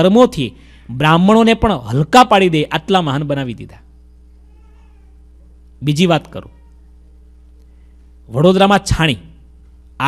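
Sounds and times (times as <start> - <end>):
low electrical hum: 0.0 - 10.0
man talking: 5.8 - 6.5, 8.3 - 9.3.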